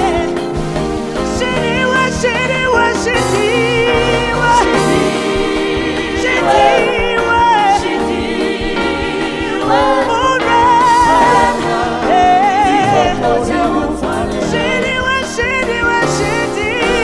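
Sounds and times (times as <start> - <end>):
group singing: 0.0 - 17.0
lead singer with vibrato: 0.0 - 17.0.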